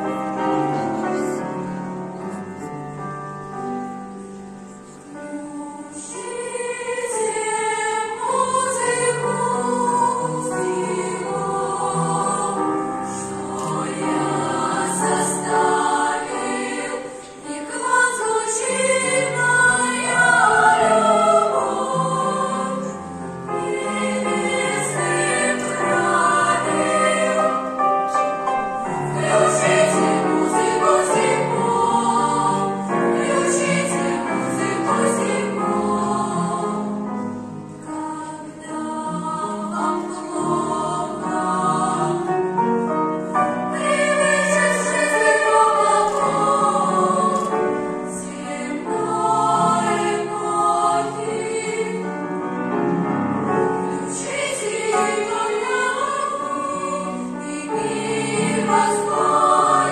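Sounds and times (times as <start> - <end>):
girls' choir singing: 4.9 - 59.9.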